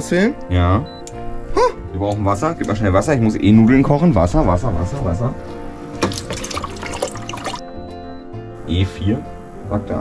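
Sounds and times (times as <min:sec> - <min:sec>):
background music: 0:00.0 - 0:10.0
water pouring into metal pot: 0:06.0 - 0:07.6.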